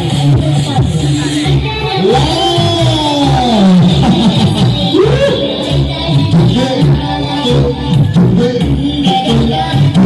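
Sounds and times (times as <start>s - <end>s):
dance music beat: 0.0s - 10.0s
downward pitch-bend tone: 4.9s - 7.6s.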